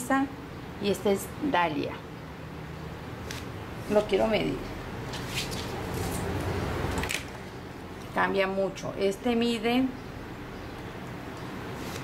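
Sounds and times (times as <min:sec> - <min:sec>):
cloth tape measure handling: 0:05.1 - 0:07.2.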